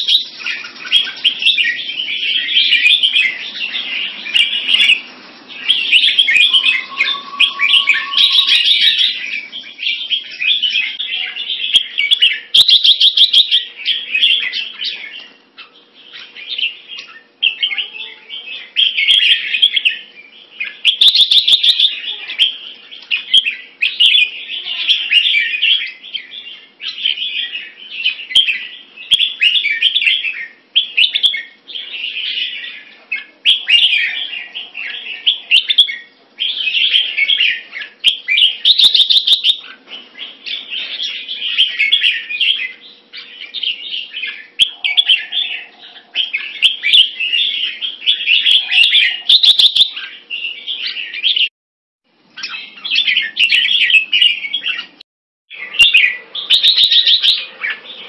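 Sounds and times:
bulbul singing: 0.0s - 51.5s, 52.3s - 58.0s.

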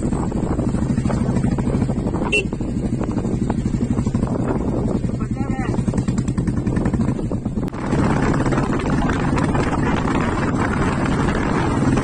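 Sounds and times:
motorcycle engine pulsing: 0.0s - 12.0s
wind rushing over microphone: 0.0s - 12.0s.

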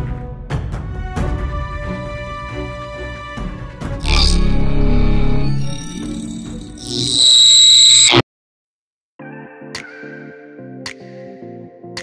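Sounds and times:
high-pitched electronic beep: 4.0s - 8.2s.

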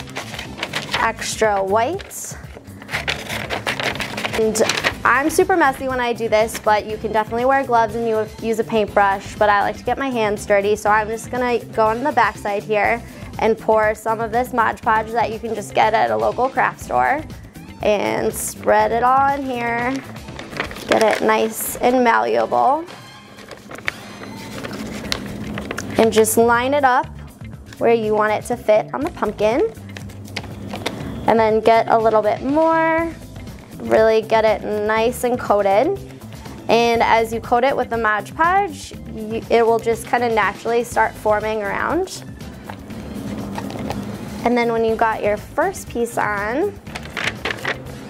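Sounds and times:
paper rustling and crinkling: 0.0s - 5.3s, 19.2s - 21.9s, 22.8s - 26.2s, 30.0s - 31.1s, 42.6s - 44.3s, 46.9s - 48.0s
faint background music: 0.0s - 48.0s.

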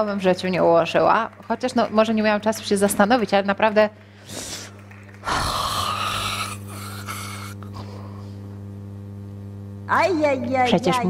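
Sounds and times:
woman sighing: 5.3s - 8.2s.

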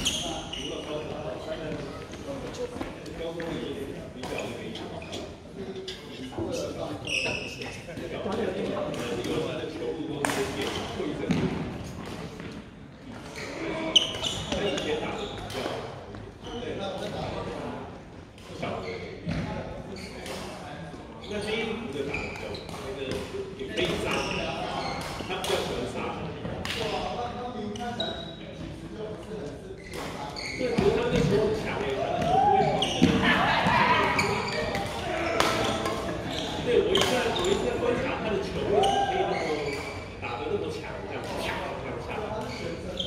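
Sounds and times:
rackets hitting shuttlecock: 34.1s - 36.2s.

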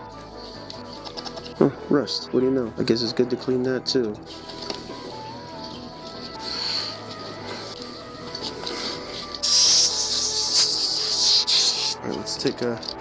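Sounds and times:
music with held tones: 0.0s - 13.0s
spray can hissing: 4.3s - 12.1s.

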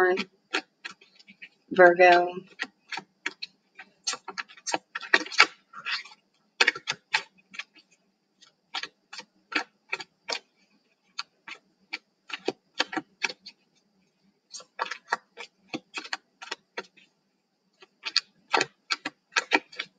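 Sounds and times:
cards being shuffled: 2.5s - 7.8s.

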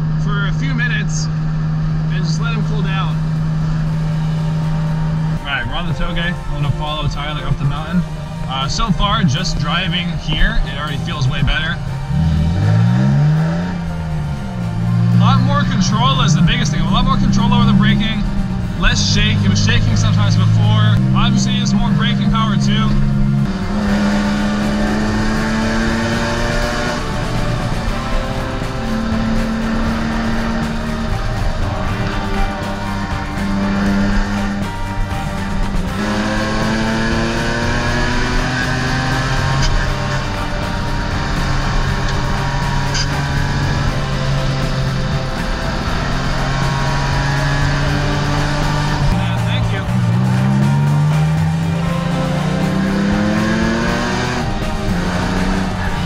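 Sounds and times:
car engine revving while driving: 0.0s - 56.0s
music playing: 0.0s - 56.0s.

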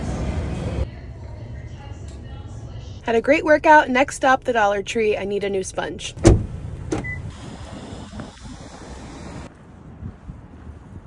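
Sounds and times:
wind buffeting microphone: 6.4s - 11.0s.

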